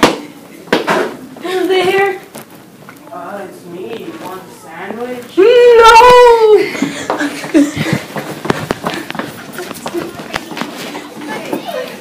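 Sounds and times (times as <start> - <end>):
running footsteps on hard floor: 6.6 - 12.0.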